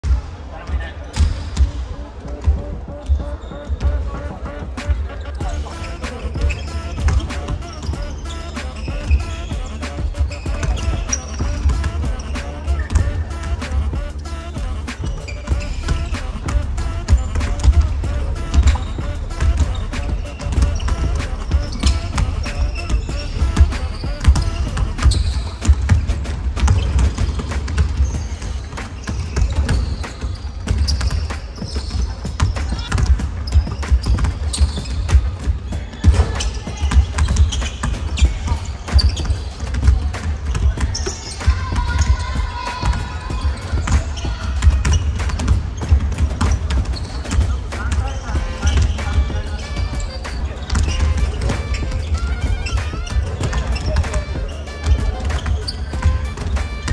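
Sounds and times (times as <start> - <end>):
voices: 0.0 - 56.9
basketballs bouncing on hardwood: 1.1 - 56.9
music with pulsing low beat: 1.3 - 56.9
basketball bouncing on hardwood: 6.4 - 28.2.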